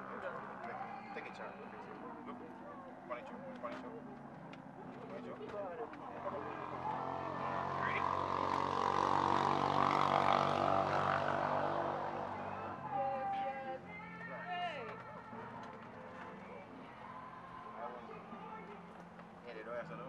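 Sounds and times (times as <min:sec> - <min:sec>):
passing engine drone: 0:06.1 - 0:13.0.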